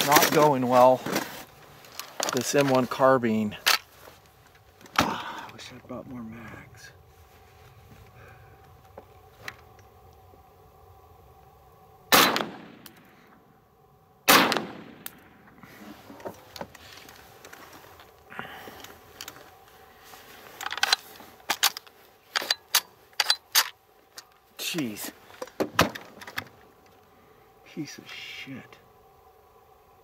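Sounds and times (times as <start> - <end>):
gunshots with echo: 14.3 - 15.0
metallic clicks of rifle action: 20.6 - 24.4.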